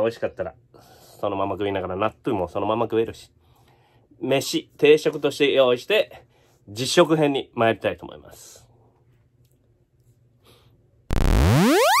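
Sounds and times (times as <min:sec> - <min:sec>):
buzzy electronic rising tone: 0:11.1 - 0:12.0.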